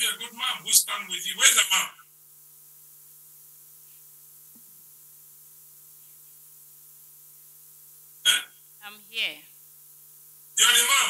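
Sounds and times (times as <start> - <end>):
person's voice: 0.0 - 1.9, 8.3 - 9.4, 10.6 - 11.0.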